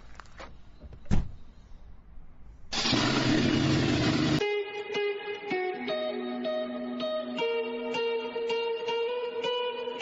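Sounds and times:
short thump: 0:00.8 - 0:01.4
loud noisy blast with hum: 0:02.7 - 0:04.4
guitar music: 0:03.3 - 0:10.0.

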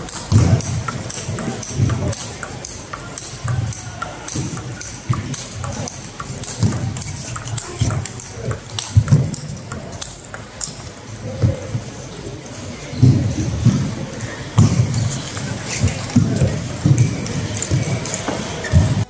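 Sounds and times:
table tennis ball clicking: 0:00.0 - 0:12.1, 0:14.8 - 0:19.0
distant table tennis rallies: 0:00.0 - 0:19.0.

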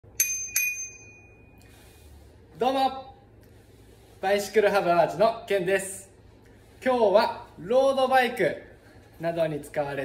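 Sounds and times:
bicycle bell ringing: 0:00.1 - 0:01.6.

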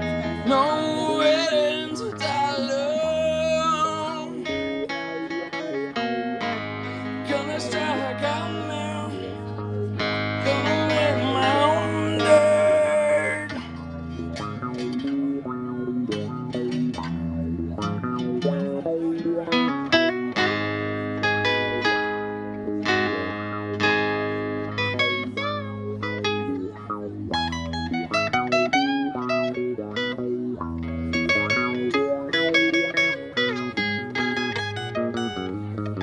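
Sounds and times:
acoustic guitar notes: 0:00.0 - 0:36.0
electric bass guitar notes: 0:00.0 - 0:36.0.

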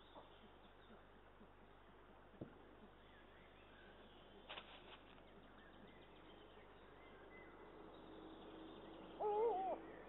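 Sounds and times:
owl call wavering in pitch: 0:09.2 - 0:09.8.

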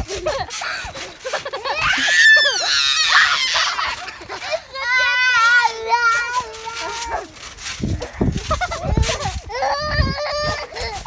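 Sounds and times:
child's wobbling wordless vocal: 0:04.8 - 0:07.4.

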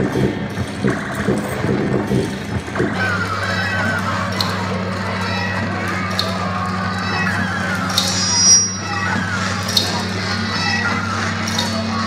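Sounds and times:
low drone: 0:00.0 - 0:12.0
high squeal: 0:06.3 - 0:12.0.

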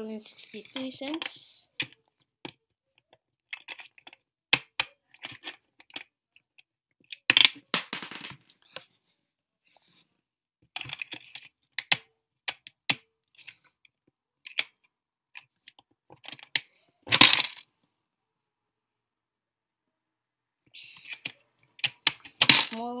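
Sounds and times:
coins clattering: 0:07.3 - 0:08.4, 0:17.2 - 0:17.6
coins clinking into coin bank: 0:07.8 - 0:08.4.

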